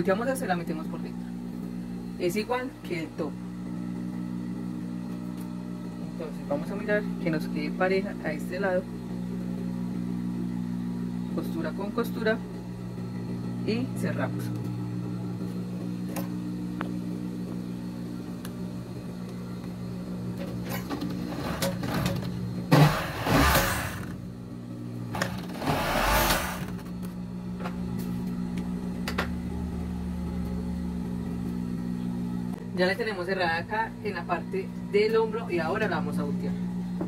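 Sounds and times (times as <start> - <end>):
overlock machine motor humming: 0.0 - 37.0
machine stitching bursts: 21.2 - 24.2, 25.1 - 26.8.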